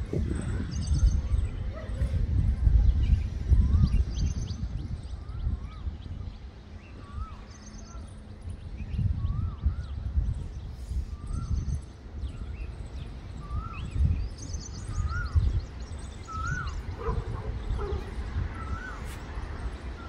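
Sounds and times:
wind buffeting microphone: 0.0s - 20.0s
small birds twittering: 0.1s - 20.0s.

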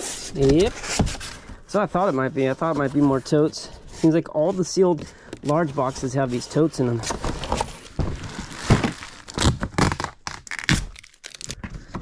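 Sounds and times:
plastic tote scraping cardboard: 0.0s - 10.0s
plastic packing crinkling: 7.0s - 11.8s.

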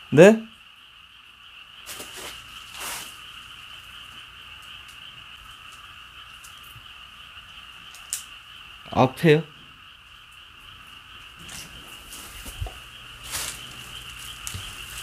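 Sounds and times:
frogs calling: 0.0s - 15.0s
rustles: 1.8s - 3.5s, 11.3s - 15.0s.

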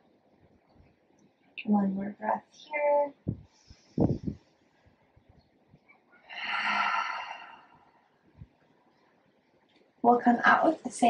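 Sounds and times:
woman breathing: 3.3s - 4.6s, 6.2s - 8.1s.

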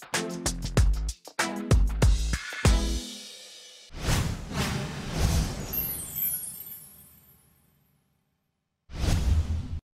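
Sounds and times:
whoosh sound effect: 3.9s - 7.0s.

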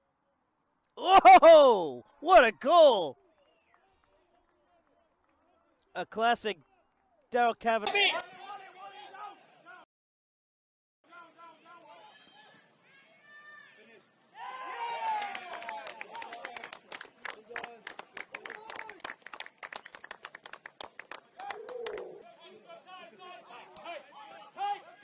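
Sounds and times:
spectators shouting and cheering: 1.0s - 3.1s, 14.3s - 16.3s
rapid clapping: 15.0s - 22.2s.

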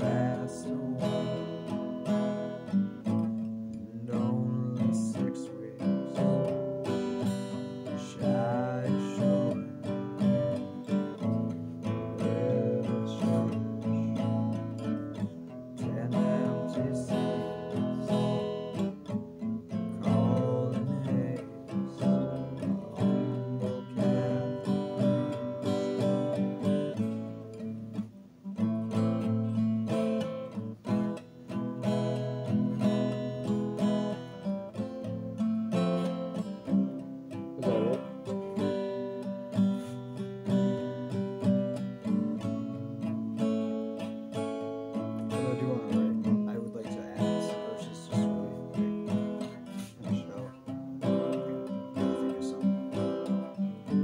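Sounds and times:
guitar picked and strummed: 0.0s - 54.0s.

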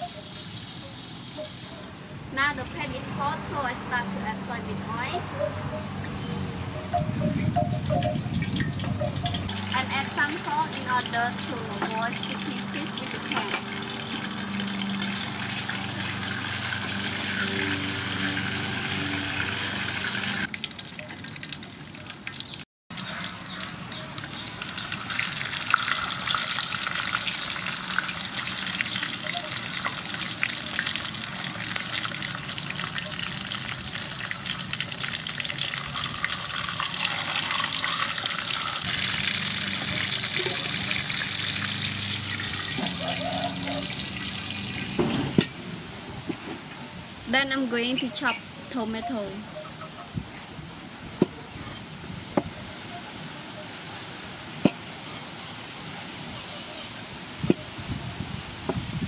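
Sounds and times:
fish sizzling in hot oil: 0.0s - 1.8s, 8.3s - 45.1s.

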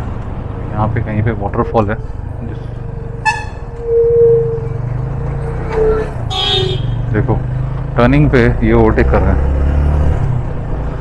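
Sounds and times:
vehicle horns: 2.5s - 7.1s.

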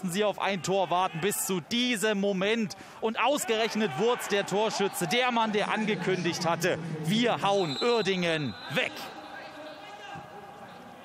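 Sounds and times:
low stadium background noise: 0.0s - 11.0s.

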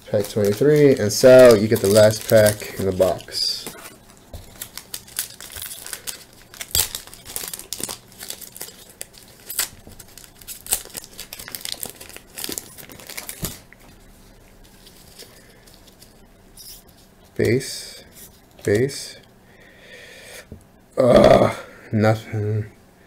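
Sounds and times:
wrapper tearing and crinkling: 0.0s - 13.7s.

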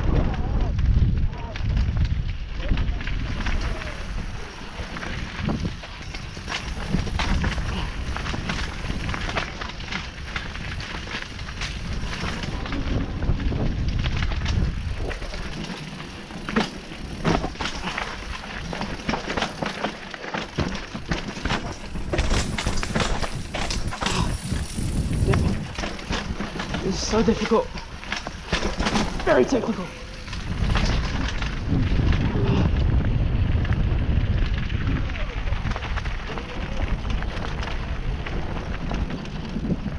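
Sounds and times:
bike rattling and knocking: 0.0s - 39.9s
tyres rolling over dirt and rock: 0.0s - 39.9s
wind rumble on microphone: 0.0s - 39.9s.

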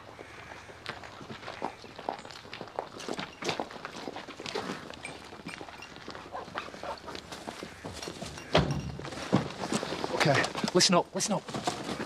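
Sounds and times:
footsteps: 0.1s - 12.0s.

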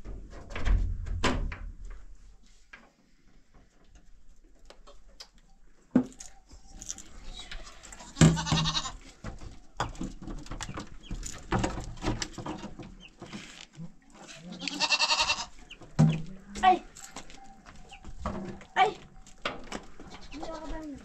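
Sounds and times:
goats bleating: 7.6s - 9.1s, 14.3s - 15.6s.

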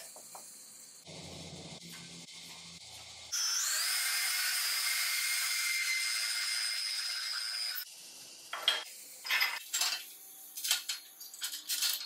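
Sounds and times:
steel parts clinking and scraping: 8.5s - 12.0s.

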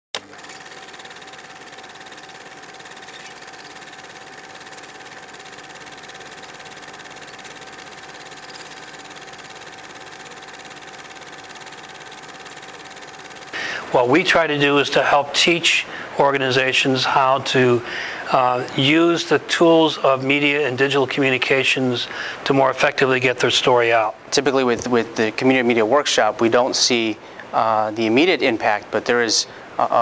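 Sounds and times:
steady hum with thin tones: 0.8s - 30.0s
man talking: 13.6s - 30.0s.

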